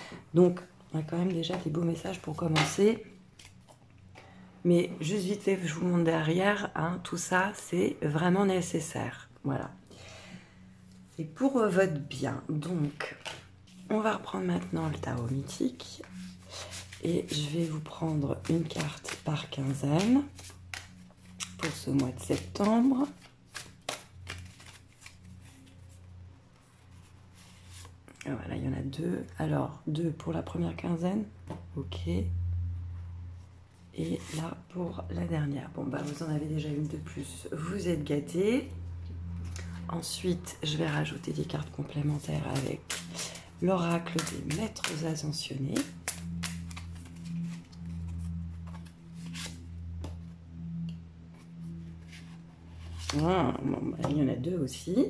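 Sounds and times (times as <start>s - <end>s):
faint low hum: 0.0s - 55.0s
cards being shuffled by hand: 12.9s - 28.0s, 41.7s - 50.2s, 51.3s - 53.4s
steady low drone: 31.7s - 53.9s.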